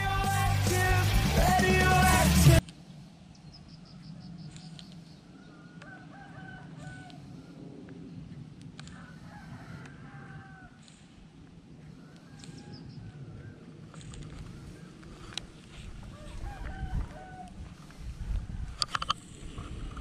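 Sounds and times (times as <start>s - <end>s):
roosters crowing faintly: 4.0s - 7.9s, 8.8s - 18.9s.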